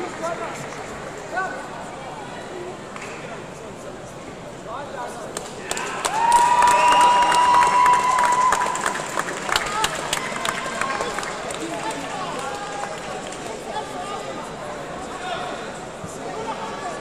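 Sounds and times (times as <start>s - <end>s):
sports hall crowd noise: 0.0s - 17.0s
sharp claps: 5.3s - 13.6s.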